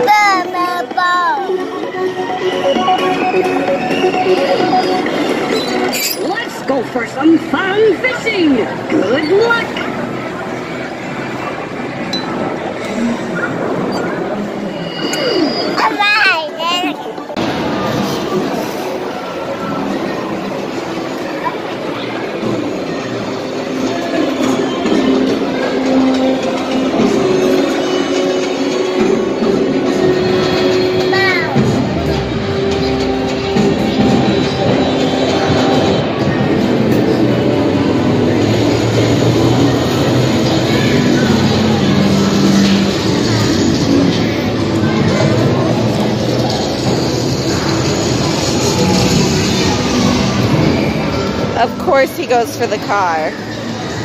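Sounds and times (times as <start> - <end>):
background chatter: 0.0 - 54.0
arcade game machines din: 17.4 - 54.0.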